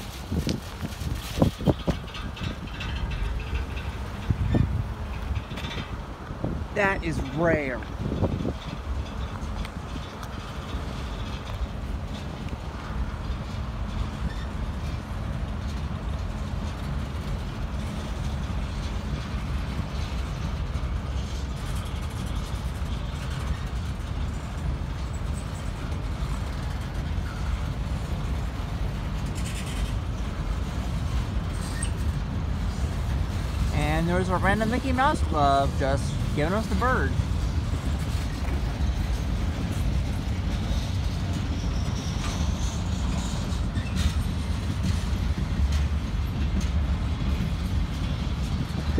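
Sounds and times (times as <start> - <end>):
train wheels rumbling on rail: 0.0 - 48.9.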